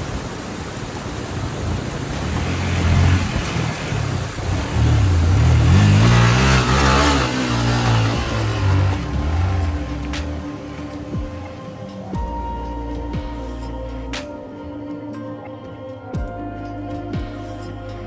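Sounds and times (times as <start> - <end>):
motorcycle engine revving hard: 1.6 - 10.5.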